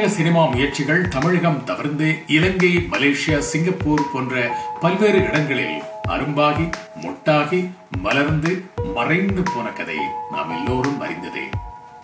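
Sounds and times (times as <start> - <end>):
man talking: 0.0 - 11.6
background music with sustained notes: 0.0 - 12.0.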